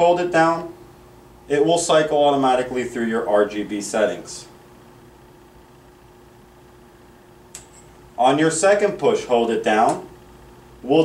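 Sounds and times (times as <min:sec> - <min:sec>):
thin steady hum: 0:00.0 - 0:11.0.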